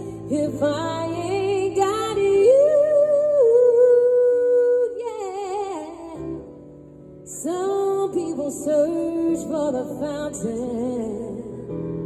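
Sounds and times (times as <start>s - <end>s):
woman singing: 0.0s - 6.6s, 7.2s - 12.0s.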